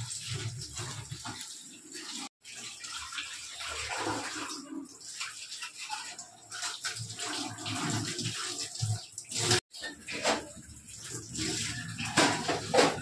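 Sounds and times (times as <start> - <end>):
tap water running into a sink: 0.0 - 13.0.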